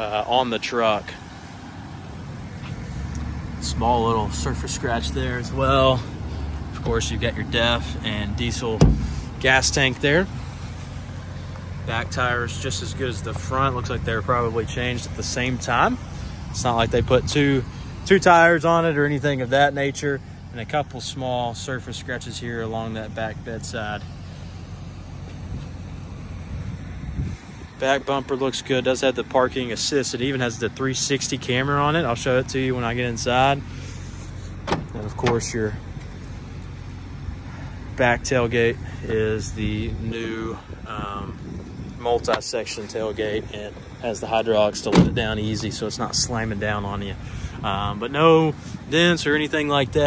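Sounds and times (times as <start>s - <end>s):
low drone of vehicle noise: 0.0s - 50.0s
road traffic rumble: 0.0s - 50.0s
wind rumbling on microphone: 26.4s - 27.8s, 39.4s - 44.0s.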